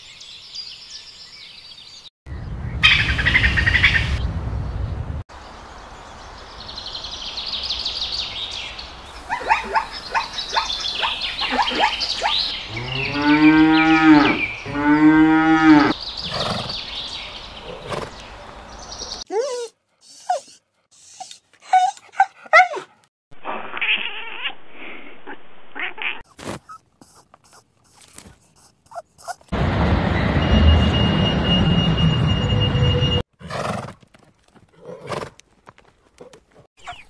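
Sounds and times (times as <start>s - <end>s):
birds chirping: 0.0s - 19.3s, 36.8s - 37.0s.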